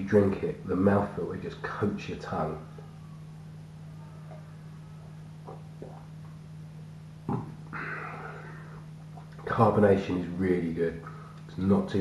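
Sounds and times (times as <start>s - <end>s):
steady low hum: 0.0s - 12.0s
man swallowing: 5.4s - 6.4s, 7.2s - 9.4s
breath out: 7.7s - 8.8s.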